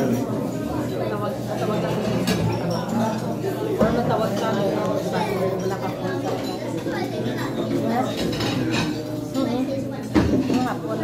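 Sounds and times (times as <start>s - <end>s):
utensils clinking on dishes: 1.7s - 11.0s.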